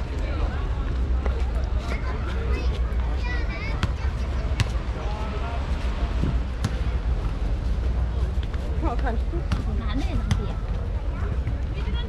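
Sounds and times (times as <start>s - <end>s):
passers-by talking: 0.0s - 12.0s.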